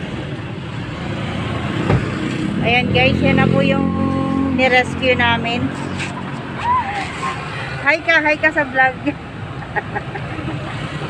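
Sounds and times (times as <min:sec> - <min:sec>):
engine and road noise in cabin: 0:00.0 - 0:11.0.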